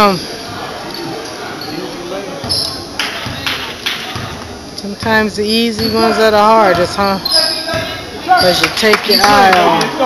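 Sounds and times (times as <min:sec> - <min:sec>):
spectators chatting: 0:00.0 - 0:10.0
basketball dribbling on hardwood: 0:04.1 - 0:07.0
short high squeak: 0:07.2 - 0:07.7.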